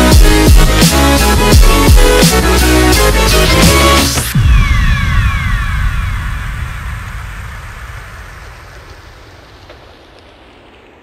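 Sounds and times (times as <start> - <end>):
falling synth sweeps: 3.6 - 8.2
low rumble: 4.2 - 11.0.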